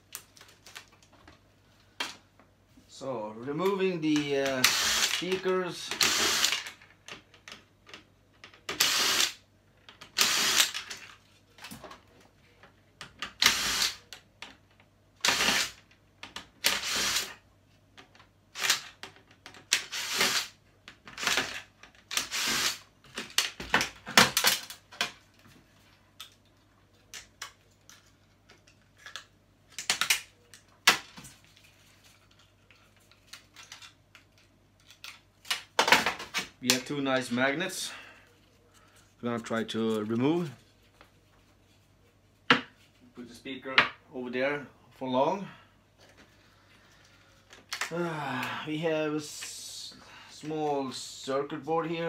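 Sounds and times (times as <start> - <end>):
cordless drill running: 4.6 - 5.2, 6.0 - 6.6, 8.8 - 9.4, 10.2 - 10.8, 13.4 - 14.0, 15.3 - 15.7, 16.7 - 17.3, 19.9 - 20.5, 22.2 - 22.8.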